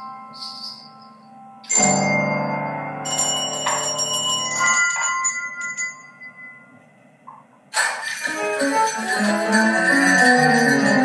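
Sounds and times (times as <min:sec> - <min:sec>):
handbells ringing: 0:00.0 - 0:06.8, 0:07.8 - 0:11.0.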